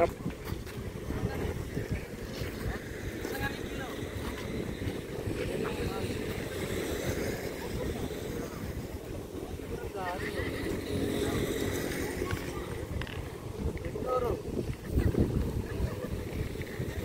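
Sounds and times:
faint people talking: 0.0s - 17.0s
wind buffeting microphone: 0.0s - 17.0s.

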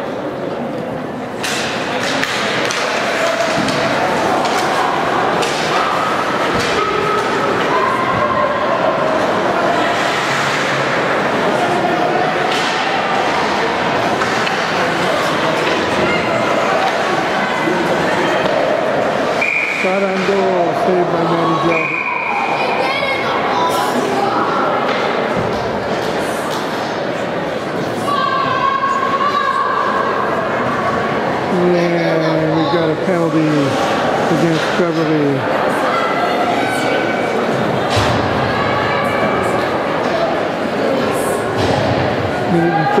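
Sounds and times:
sticks hitting puck: 1.4s - 7.7s, 12.4s - 17.2s
whistle blasts: 19.4s - 19.9s, 21.7s - 22.6s.

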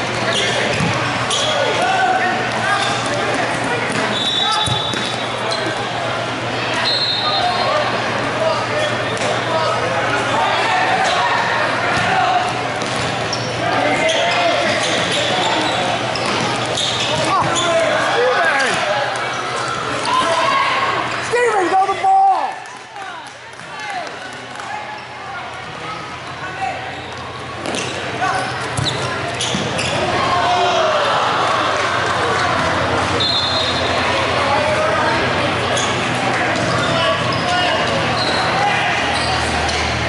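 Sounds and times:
people shouting in echoing hall: 29.9s - 40.0s.

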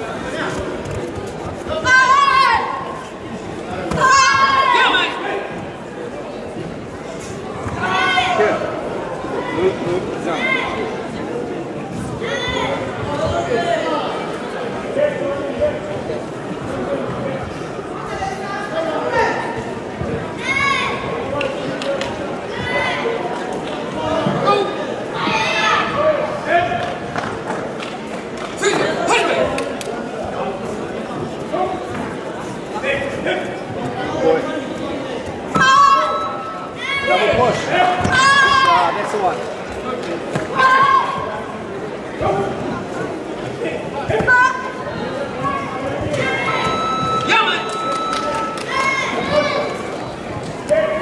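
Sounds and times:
crowd chatter: 0.0s - 51.0s
voices calling out in echoing hall: 0.0s - 51.0s.

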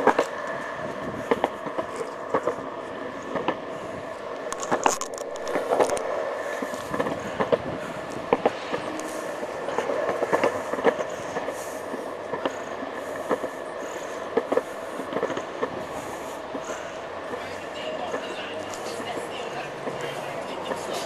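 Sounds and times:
wheels clicking over pavement joints: 4.4s - 21.0s
small wheels rolling on concrete: 4.5s - 11.7s, 13.3s - 21.0s.

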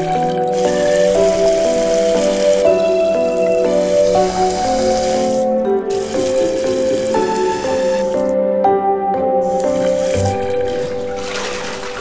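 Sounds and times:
background music: 0.0s - 12.0s
tap water splashing into basin: 9.5s - 12.0s.

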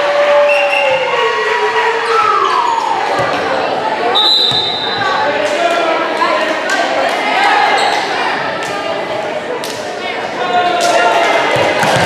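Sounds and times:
chatter of players and spectators: 0.0s - 12.0s
volleyball bouncing on wooden floor: 3.1s - 3.6s, 11.5s - 12.0s.

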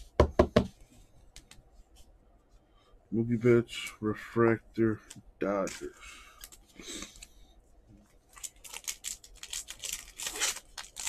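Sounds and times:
hands knocking on tabletop: 0.2s - 0.7s.

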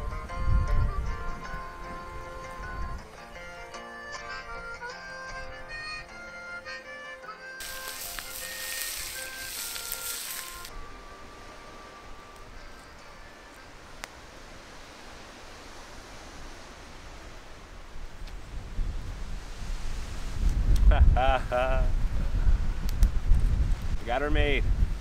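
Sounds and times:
wind rumble on microphone: 0.0s - 3.1s, 10.6s - 25.0s
background music: 0.0s - 14.1s
fish sizzling over campfire: 7.6s - 10.8s.

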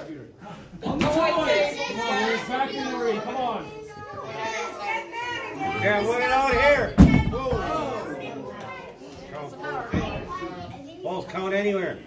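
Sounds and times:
bodies thudding onto wooden stage: 6.6s - 7.8s.

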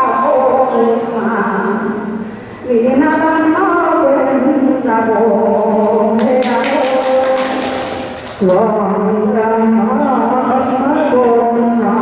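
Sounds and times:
woman singing unaccompanied: 2.7s - 12.0s.

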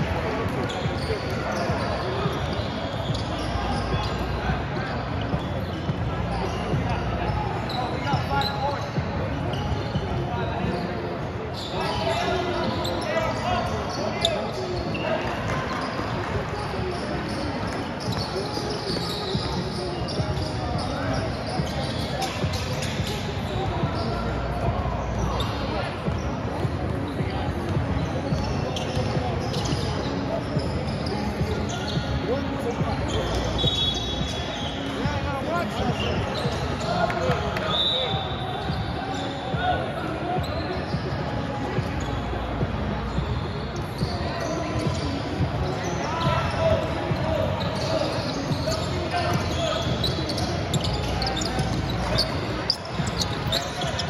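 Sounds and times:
shouts and chatter of people: 0.0s - 54.0s.

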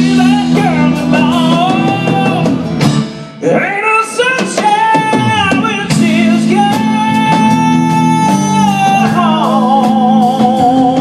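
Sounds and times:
acoustic guitar: 0.0s - 11.0s
drums: 0.0s - 11.0s
sliding lead melody: 0.0s - 11.0s.

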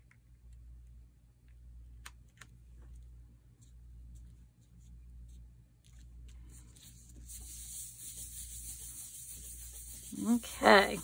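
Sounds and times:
hands rubbing paper envelope: 3.6s - 11.0s
hand sliding over paper: 5.9s - 11.0s.

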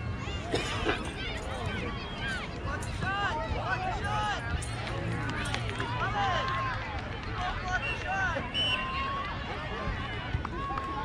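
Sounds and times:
children and adults shouting: 0.0s - 11.0s.

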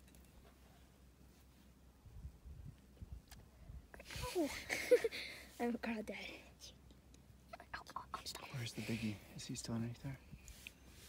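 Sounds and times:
faint breathy whispering: 7.6s - 9.5s.

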